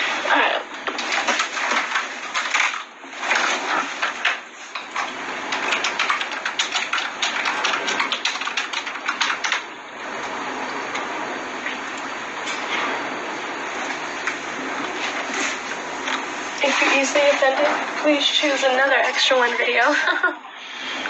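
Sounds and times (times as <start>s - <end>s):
computer keyboard typing: 1.0s - 9.7s
steady hiss: 8.8s - 21.0s.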